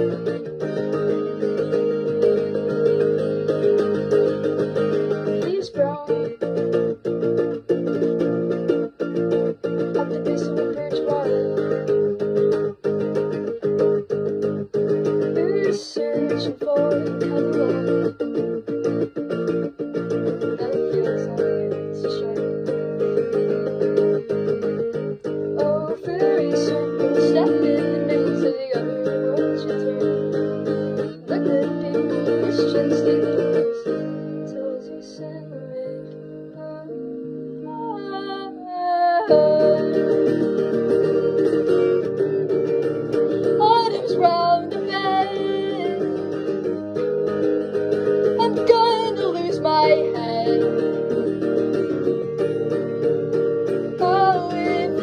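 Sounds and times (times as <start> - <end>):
guitar chords strummed: 0.0 - 55.0.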